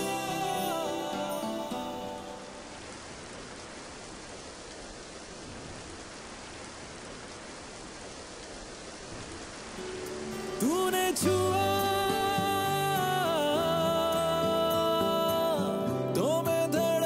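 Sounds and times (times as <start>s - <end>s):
steady rain falling: 0.0s - 17.0s.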